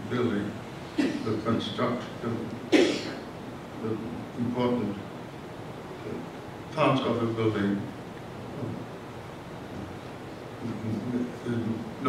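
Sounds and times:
room noise hiss and rumble: 0.0 - 12.0.

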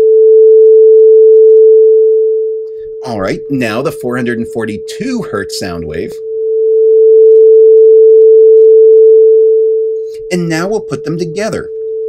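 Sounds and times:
steady sine tone: 0.0 - 12.0.

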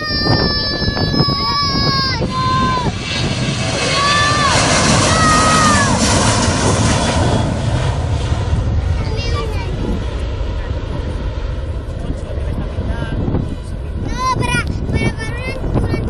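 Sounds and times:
jet engine roar: 0.0 - 16.0.

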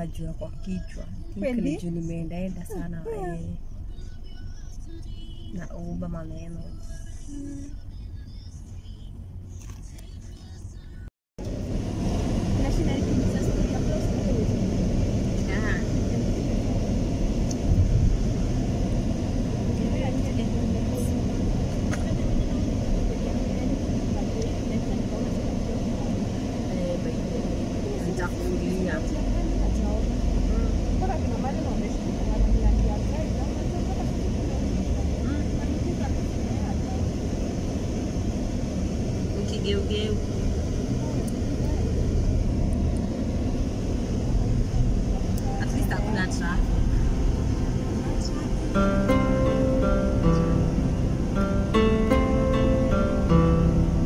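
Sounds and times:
car cabin rumble: 0.0 - 54.0.

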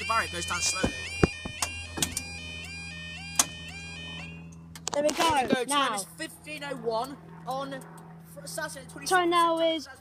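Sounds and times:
level crossing warning alarm: 0.0 - 4.7
steady low hum: 0.0 - 10.0.

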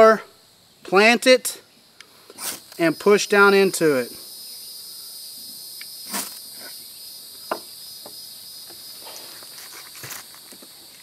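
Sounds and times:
insect chirring: 0.0 - 11.0.

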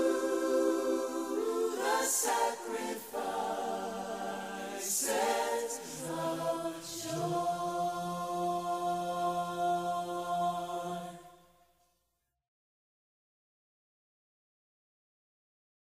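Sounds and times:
choir singing with accompaniment: 0.0 - 11.6.

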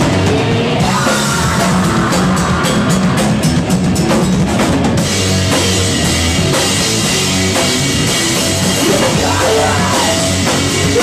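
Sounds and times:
live rock band playing: 0.0 - 11.0
rapid driving drumming: 0.0 - 11.0.

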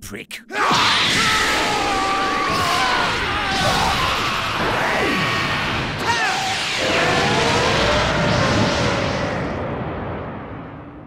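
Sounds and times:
cartoon energy blast explosion: 0.8 - 9.6.

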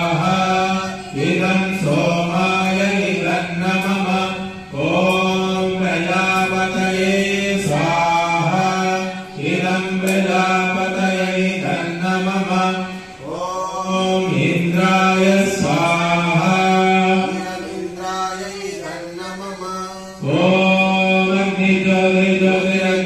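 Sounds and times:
man chanting into a microphone: 0.0 - 23.0.

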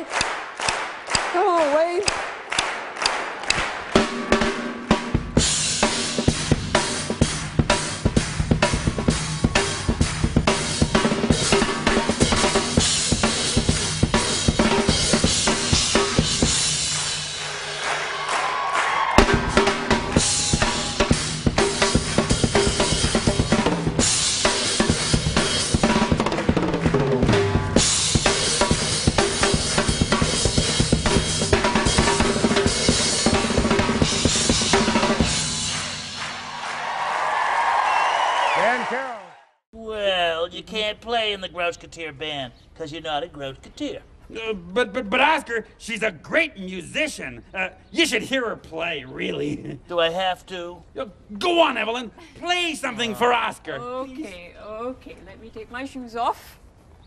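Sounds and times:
drum kit solo: 3.5 - 18.3, 19.0 - 36.4.

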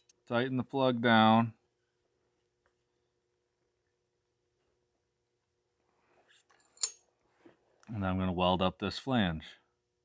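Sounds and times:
metallic clink with ring: 6.6 - 7.1.

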